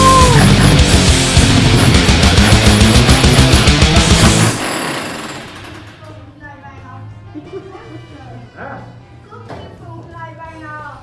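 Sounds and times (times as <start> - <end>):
demolition hammer pounding: 0.1 - 6.1.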